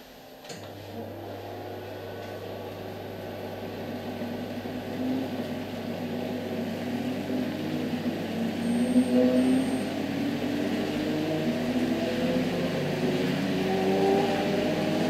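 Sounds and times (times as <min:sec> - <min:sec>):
machine hum: 0:00.0 - 0:15.0.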